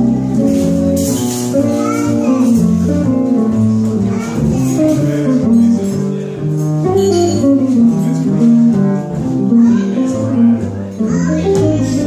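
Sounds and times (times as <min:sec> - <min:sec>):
jazz electric guitar: 0:00.0 - 0:12.0
upright double bass: 0:00.0 - 0:12.0.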